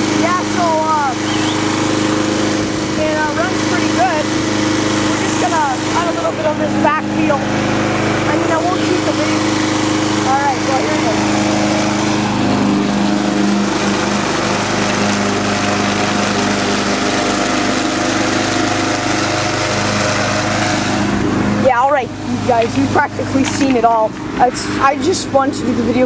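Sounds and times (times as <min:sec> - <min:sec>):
lawnmower engine running: 0:00.0 - 0:26.0
mower cutting grass: 0:00.0 - 0:26.0.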